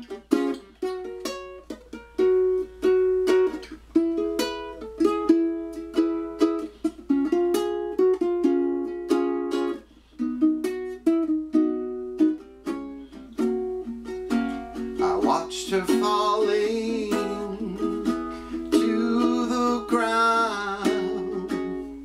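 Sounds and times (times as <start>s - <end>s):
solo ukulele playing: 0.0s - 22.0s.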